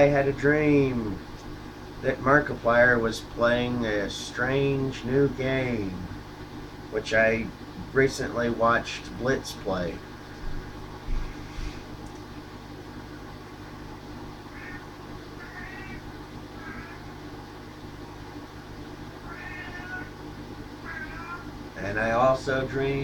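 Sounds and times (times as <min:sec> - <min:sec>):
steady low hum: 0:00.0 - 0:23.0
cat meowing: 0:14.5 - 0:17.1, 0:19.2 - 0:20.2, 0:20.8 - 0:21.5.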